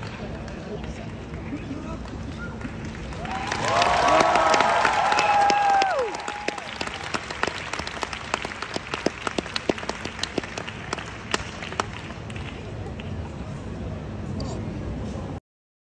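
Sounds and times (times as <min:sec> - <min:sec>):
audience applauding: 0:00.0 - 0:13.1
audience cheering and whooping: 0:03.1 - 0:07.3.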